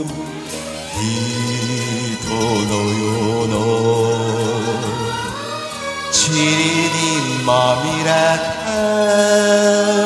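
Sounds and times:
person singing a long note: 0:00.0 - 0:10.0
pop ballad accompaniment: 0:00.0 - 0:10.0.

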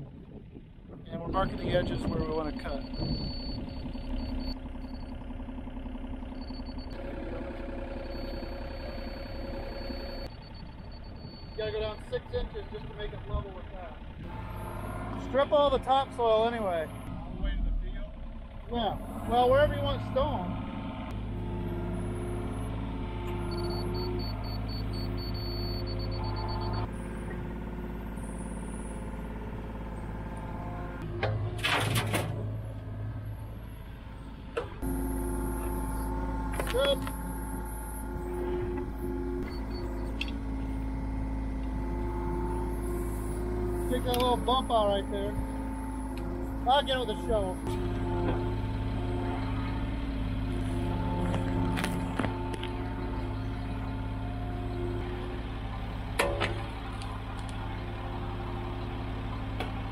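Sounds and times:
diesel engine idling: 0:00.0 - 0:59.9
excavator whining tones: 0:00.4 - 0:59.9.

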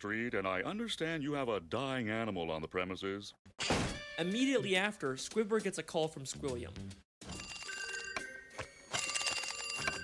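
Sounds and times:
cartoon telephone bell ringing: 0:07.3 - 0:10.0.

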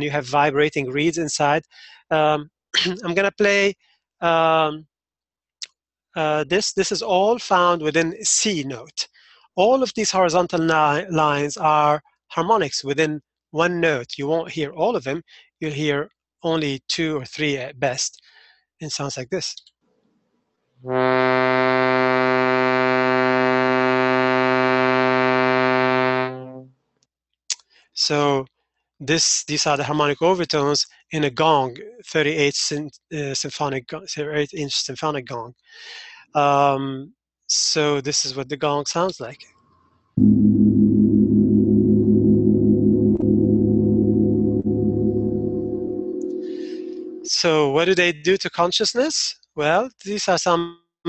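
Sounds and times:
large gong ringing: 0:40.2 - 0:47.3
shruti box drone: 0:40.2 - 0:47.4.

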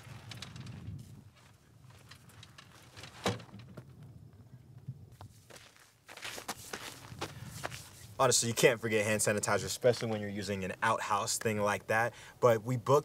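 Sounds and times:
boot footsteps on dry dirt: 0:05.1 - 0:08.1.

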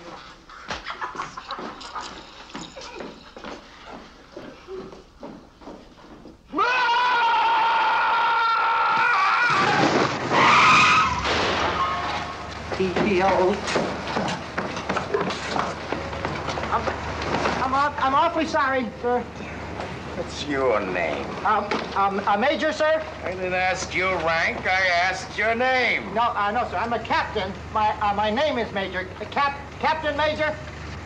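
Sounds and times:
man screaming: 0:06.5 - 0:09.9
sharp knocks and clatter: 0:11.2 - 0:17.8, 0:21.1 - 0:22.3.

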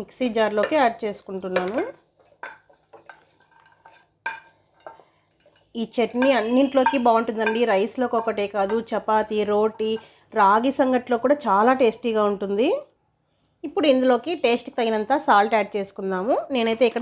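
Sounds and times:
spoon scraping a steel jar: 0:02.4 - 0:08.4
woman speaking: 0:05.8 - 0:12.9, 0:13.6 - 0:17.0.

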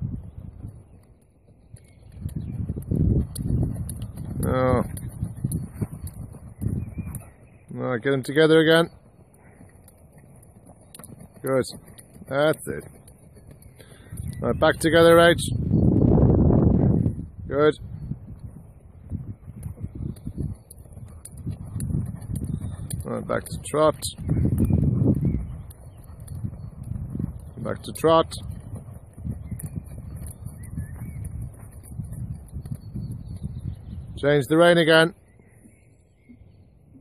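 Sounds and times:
wind buffeting microphone: 0:00.0 - 0:37.0
muffled horse hoofbeats: 0:00.3 - 0:15.8, 0:18.3 - 0:34.8.

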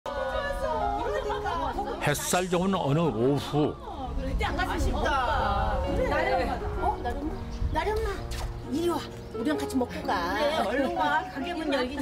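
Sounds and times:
women chatting: 0:00.1 - 0:02.0, 0:03.8 - 0:12.0.

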